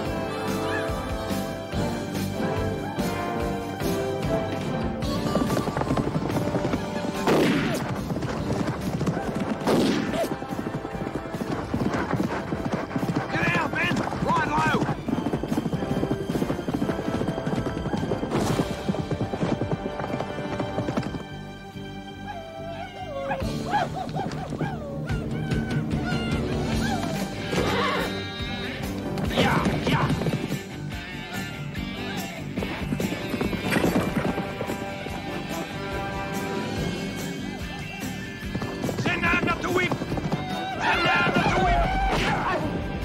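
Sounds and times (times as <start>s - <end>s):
film score music: 0.0s - 43.0s
hooves galloping on dry ground: 0.0s - 43.0s
horse neighing: 22.2s - 28.7s, 36.6s - 42.5s.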